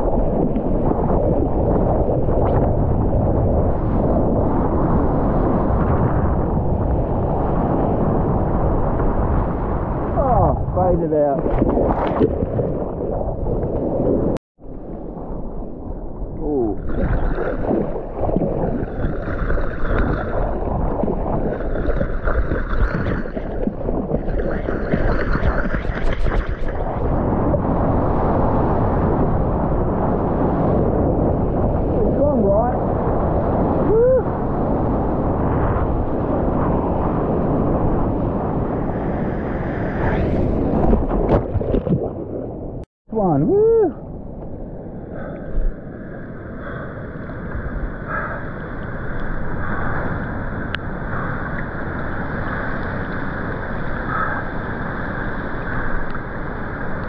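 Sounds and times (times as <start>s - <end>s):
wind buffeting microphone: 0.0s - 57.0s
underwater gurgling: 9.7s - 28.2s, 40.0s - 42.8s
splashing whitewater: 16.6s - 27.1s.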